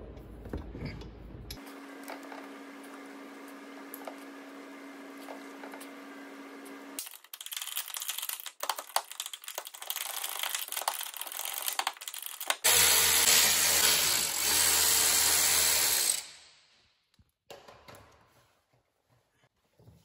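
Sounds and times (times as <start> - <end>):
cordless power drill running: 12.6 - 16.2.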